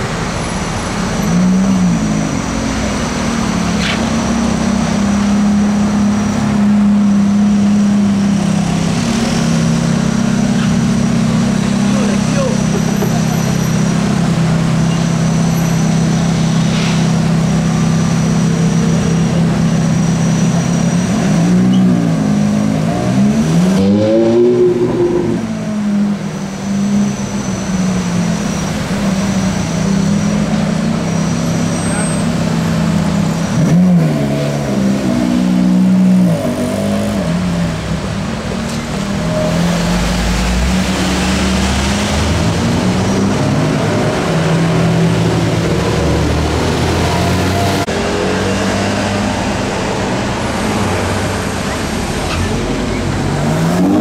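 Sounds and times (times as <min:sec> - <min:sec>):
sports car engines idling: 0:09.6 - 0:21.2
engine revving: 0:18.4 - 0:26.3, 0:29.4 - 0:37.8, 0:39.1 - 0:54.0.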